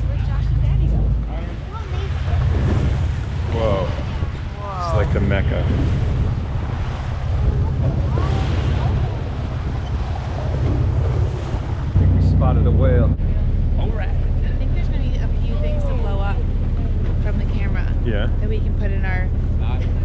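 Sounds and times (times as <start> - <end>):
boat engine rumble: 0.0 - 20.0
water rushing along hull: 0.0 - 20.0
wind buffeting microphone: 0.0 - 20.0
faint passenger voices: 12.2 - 20.0.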